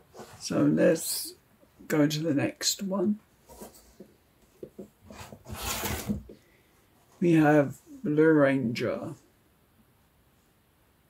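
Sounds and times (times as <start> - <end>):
packaging rustling scrape: 5.1 - 6.4.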